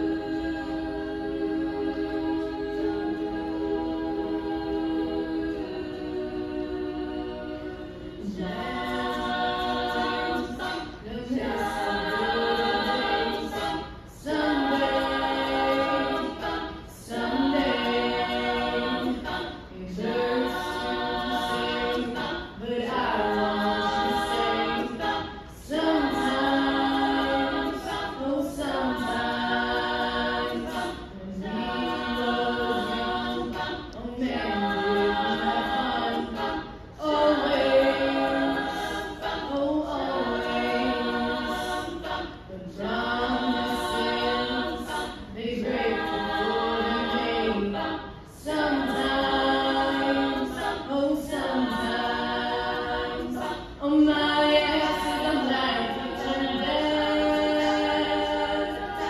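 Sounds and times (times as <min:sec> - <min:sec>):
female a cappella group singing: 0:00.0 - 0:59.0.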